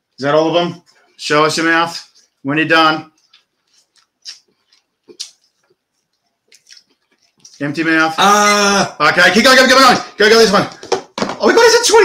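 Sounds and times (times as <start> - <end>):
chewing and swallowing: 3.2 - 7.6
wet mouth clicks: 3.2 - 7.6.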